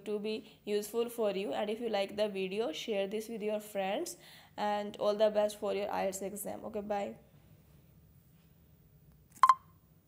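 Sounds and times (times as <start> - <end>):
smartphone double beep: 9.4 - 9.7.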